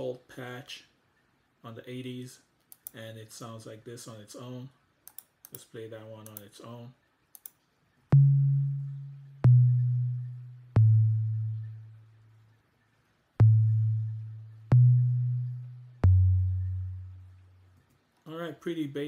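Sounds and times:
low sine synth notes: 0:08.1 - 0:12.7, 0:13.3 - 0:17.8.

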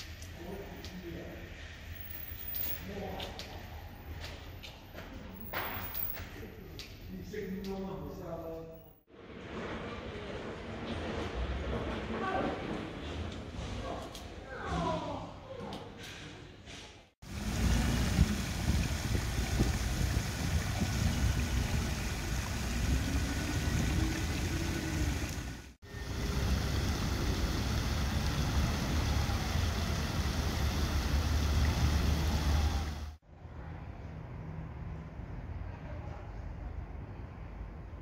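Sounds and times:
fountain water splashing: 0:17.2 - 0:33.2.

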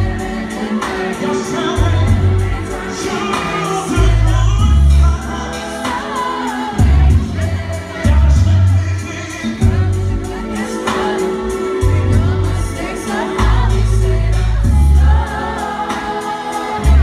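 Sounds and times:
deep bass notes: 0:01.8 - 0:02.9, 0:04.0 - 0:05.6, 0:11.8 - 0:15.3.

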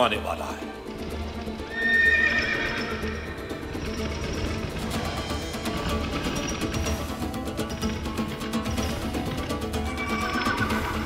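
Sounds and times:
background music: 0:00.0 - 0:11.0
horse hoofbeats: 0:00.9 - 0:11.0
horse whinnying: 0:01.6 - 0:04.3, 0:09.9 - 0:11.0.

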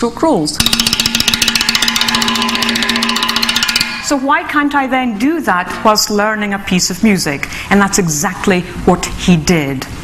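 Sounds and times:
fast drum roll: 0:00.6 - 0:04.3
ringing drum tone: 0:00.6 - 0:04.5.

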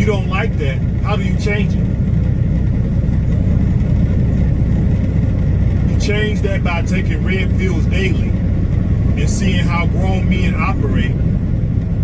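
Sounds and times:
truck engine and tyres droning: 0:00.0 - 0:12.0.

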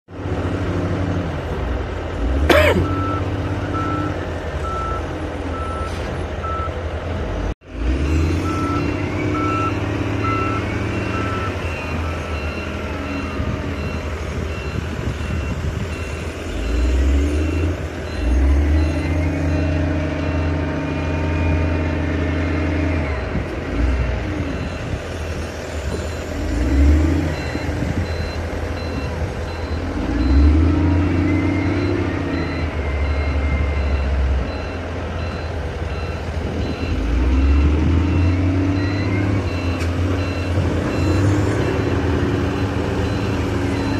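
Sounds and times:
engine and hydraulics under load: 0:00.1 - 0:43.9
electronic warning beep: 0:08.3 - 0:20.6, 0:25.9 - 0:43.9.

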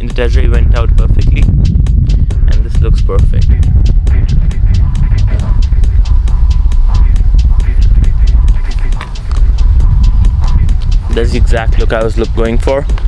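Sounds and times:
fast light ticks: 0:00.0 - 0:13.0.

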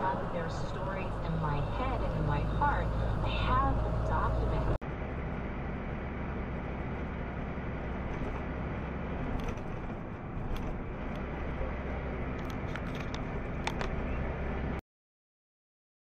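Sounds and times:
indistinct voices: 0:00.0 - 0:04.8
truck engine and road noise: 0:00.0 - 0:14.8.

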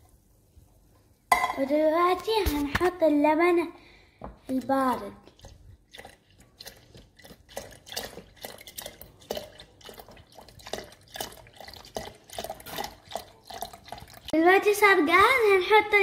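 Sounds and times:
milk glugging into jug: 0:05.1 - 0:14.3.

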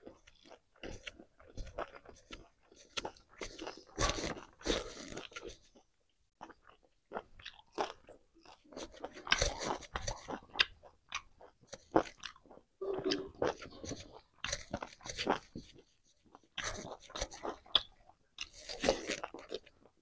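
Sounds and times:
chewing and crunching food: 0:00.0 - 0:20.0.

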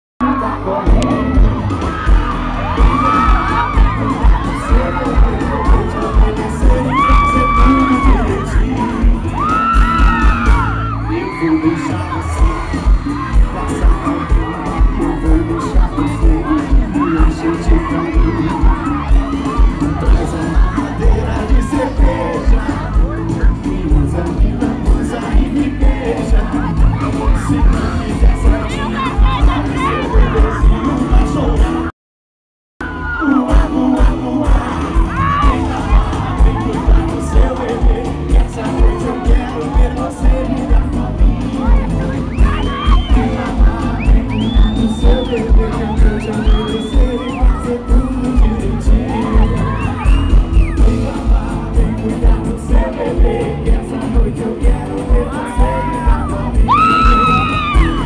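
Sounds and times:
crowd screaming and cheering: 0:00.2 - 0:31.9, 0:32.8 - 0:58.0
live concert music with heavy bass: 0:00.2 - 0:31.9, 0:32.8 - 0:58.0.

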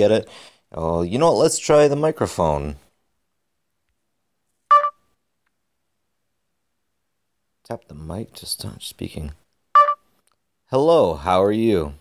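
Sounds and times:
short electronic beep: 0:04.7 - 0:05.0, 0:09.8 - 0:10.0.

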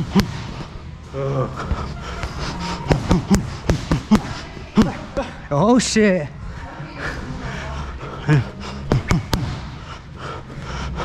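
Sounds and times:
boxing gloves striking mitts: 0:00.0 - 0:00.6, 0:02.9 - 0:05.0, 0:08.9 - 0:09.8.

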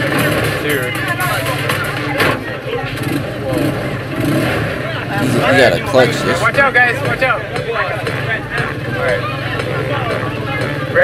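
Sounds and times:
person talking: 0:05.2 - 0:06.5.

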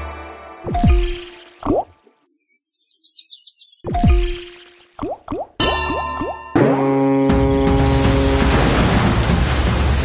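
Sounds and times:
game music: 0:00.0 - 0:02.4, 0:03.6 - 0:10.0.

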